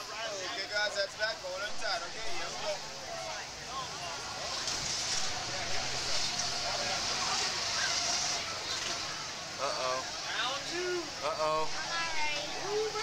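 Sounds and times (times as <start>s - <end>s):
faint voices: 0.0s - 13.0s.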